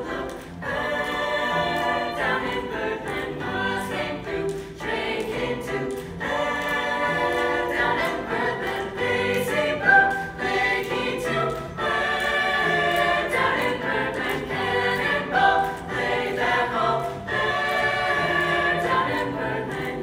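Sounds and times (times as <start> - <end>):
choir singing: 0.0 - 20.0
piano: 0.0 - 20.0.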